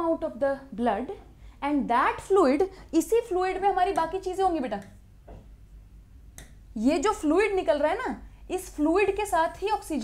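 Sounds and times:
woman speaking: 0.0s - 5.0s, 6.8s - 10.0s.

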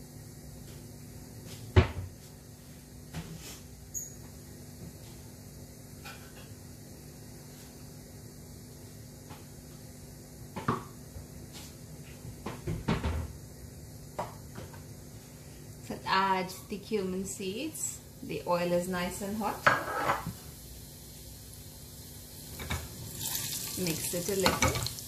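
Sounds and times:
steady low hum: 0.0s - 25.0s
kitchen items knocking and clattering: 24.3s - 24.9s.

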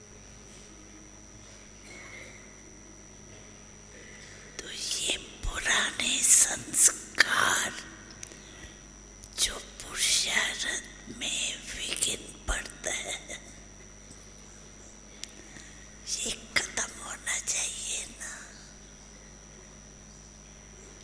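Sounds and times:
woman whispering softly: 4.6s - 8.0s, 9.3s - 13.7s, 16.0s - 18.8s.

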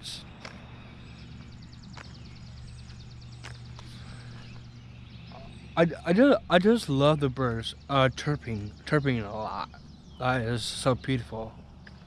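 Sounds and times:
songbirds chirping: 0.0s - 12.0s
steady low hum: 0.0s - 12.0s.

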